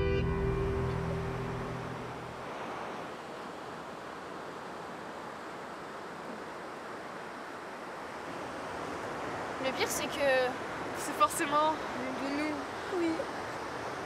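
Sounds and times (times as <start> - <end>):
low music notes: 0.0 - 2.4
wind: 0.0 - 14.0.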